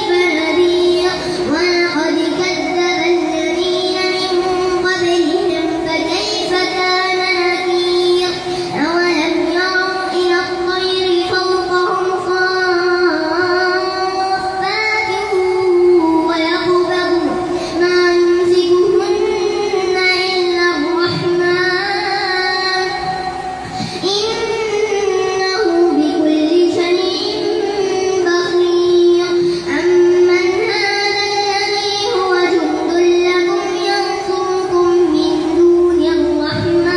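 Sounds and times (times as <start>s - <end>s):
boy chanting into a microphone: 0.0s - 36.9s.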